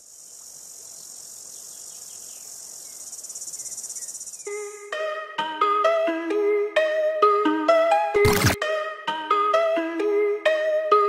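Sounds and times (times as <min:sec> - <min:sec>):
insects buzzing: 0:00.0 - 0:04.8.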